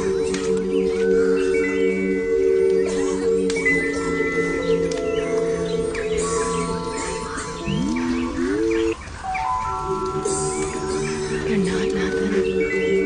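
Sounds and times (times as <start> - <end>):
ambient synth pad chords: 0.0 - 13.0
birdsong chirps: 0.0 - 13.0.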